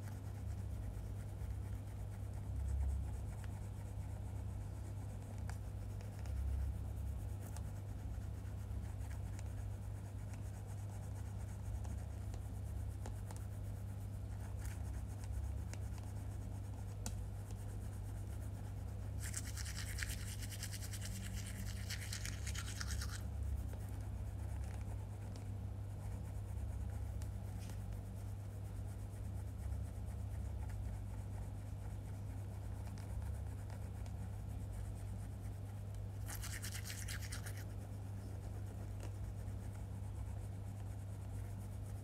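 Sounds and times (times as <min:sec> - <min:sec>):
steady low hum: 0:00.0 - 0:42.0
toothbrush scrubbing teeth: 0:19.2 - 0:23.3, 0:36.2 - 0:37.7.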